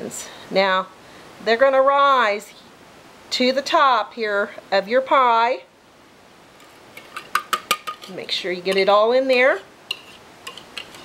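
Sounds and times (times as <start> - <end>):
whisk clinking against bowl: 9.9 - 11.0.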